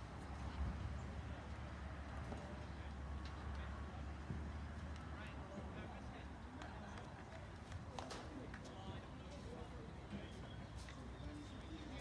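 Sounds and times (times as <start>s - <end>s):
wind rumble on microphone: 0.0s - 1.4s
distant voices: 0.1s - 12.0s.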